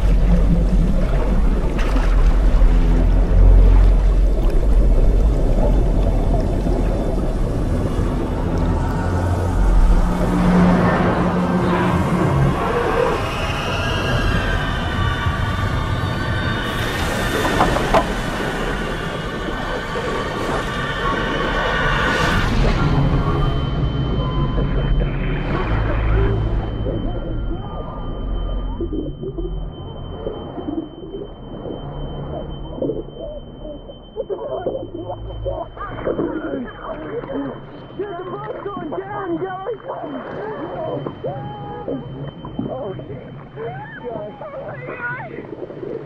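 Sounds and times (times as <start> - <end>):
low steady drone: 0.0 - 46.0
muffled underwater churning water: 0.0 - 46.0
thin steady high tone: 3.2 - 46.0.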